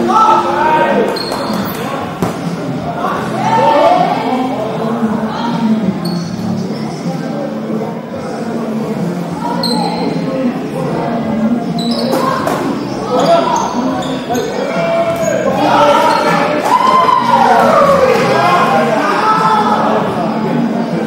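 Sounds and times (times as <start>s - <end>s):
players calling out: 0.0s - 21.0s.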